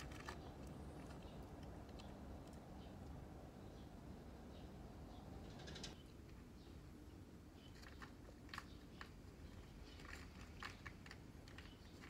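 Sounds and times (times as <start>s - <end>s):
cat crunching dry kibble: 0.0s - 2.8s, 7.7s - 12.0s.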